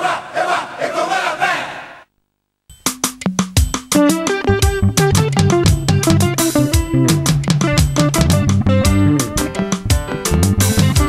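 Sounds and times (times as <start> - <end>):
group chanting: 0.0 - 2.1
percussion beats: 2.7 - 11.0.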